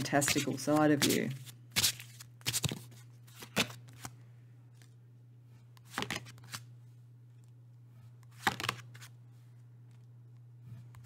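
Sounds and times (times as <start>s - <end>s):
cards being shuffled: 0.0s - 4.2s, 5.8s - 6.7s, 8.2s - 9.2s.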